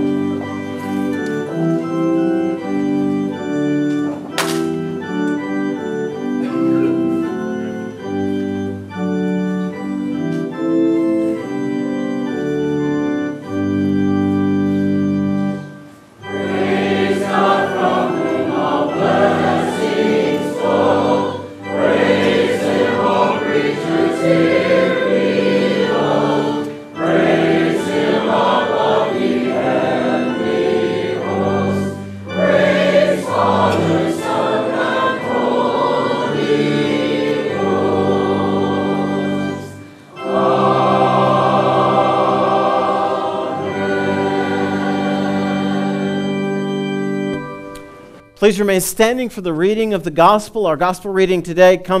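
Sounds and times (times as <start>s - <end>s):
church choir singing: 0.0s - 48.3s
organ accompaniment: 0.0s - 52.0s.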